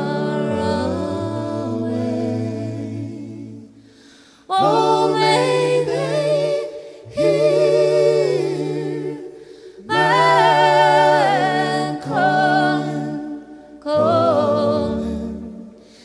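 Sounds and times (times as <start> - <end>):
group singing gospel harmony: 0.0 - 16.0.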